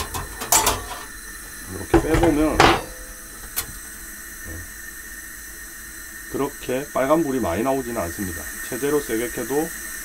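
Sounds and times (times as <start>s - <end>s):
metal grate clattering: 0.0s - 1.1s, 1.9s - 3.7s.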